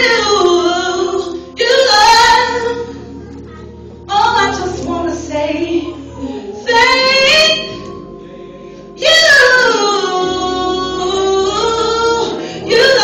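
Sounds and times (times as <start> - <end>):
woman singing gospel with group: 0.0 - 2.9, 4.1 - 8.1, 9.0 - 13.0.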